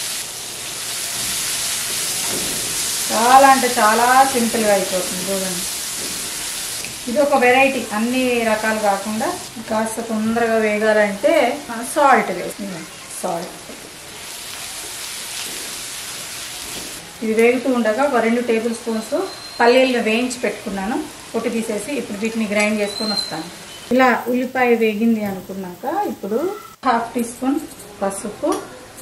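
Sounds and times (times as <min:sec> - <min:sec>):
spices sizzling in hot oil: 0:00.0 - 0:27.4.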